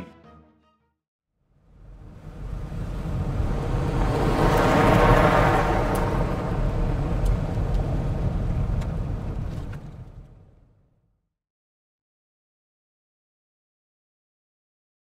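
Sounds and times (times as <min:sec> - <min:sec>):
rushing rumbling noise: 0:01.7 - 0:10.7.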